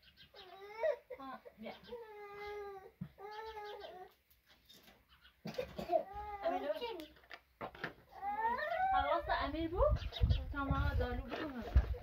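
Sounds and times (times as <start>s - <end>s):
young child crying: 0.5s - 1.1s, 8.1s - 9.2s.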